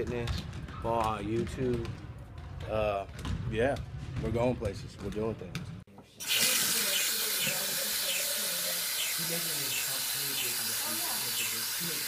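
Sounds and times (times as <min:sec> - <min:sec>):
faucet water running into bottle: 0:06.2 - 0:12.0.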